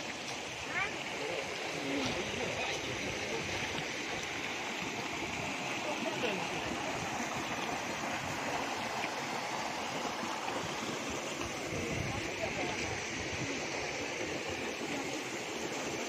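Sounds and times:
stream splashing over rocks: 0.0s - 16.0s.

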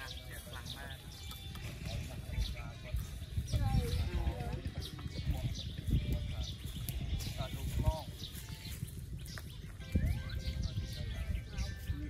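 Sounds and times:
high bird chirps: 0.0s - 12.0s
low voices of a group: 0.0s - 12.0s.

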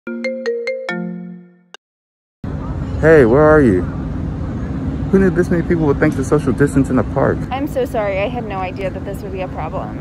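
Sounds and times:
phone ringtone plucked notes: 0.1s - 1.7s.

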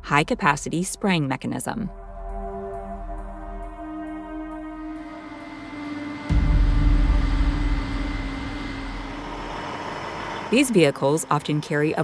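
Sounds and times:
loud low rumble: 1.9s - 10.9s
pump and engine hum: 5.0s - 12.0s.

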